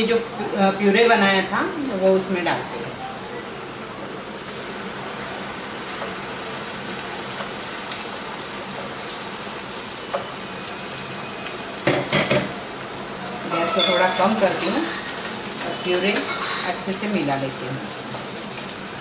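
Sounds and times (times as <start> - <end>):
onions sizzling in hot oil: 0.0 - 19.0.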